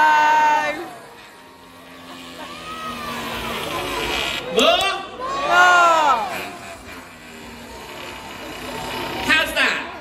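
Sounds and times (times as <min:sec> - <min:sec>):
crowd murmur: 0:00.0 - 0:10.0
drawn-out exclamation: 0:00.0 - 0:10.0.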